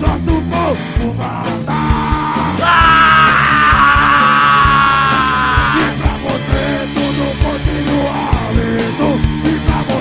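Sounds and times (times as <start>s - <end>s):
hardcore punk band: 0.0s - 10.0s
steady drum beat: 0.0s - 10.0s.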